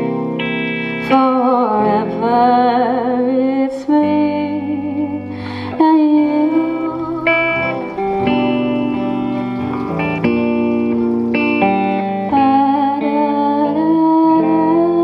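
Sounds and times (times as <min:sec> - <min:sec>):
acoustic guitar chords: 0:00.0 - 0:15.0
electric guitar lead line: 0:00.0 - 0:15.0.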